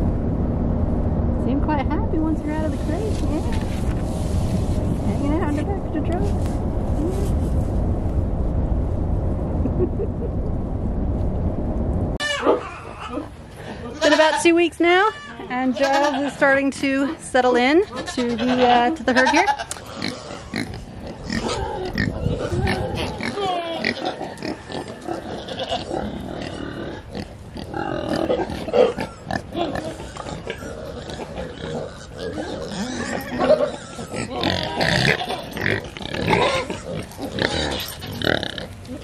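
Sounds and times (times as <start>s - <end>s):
pigs grunting: 17.9s - 39.0s.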